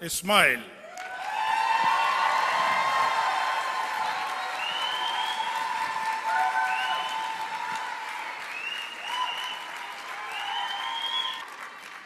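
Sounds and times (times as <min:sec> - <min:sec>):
audience applauding and cheering: 0:00.8 - 0:12.0.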